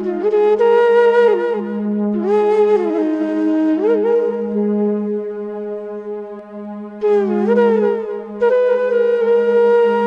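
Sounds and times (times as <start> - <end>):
flute-like melody: 0.0 - 10.0.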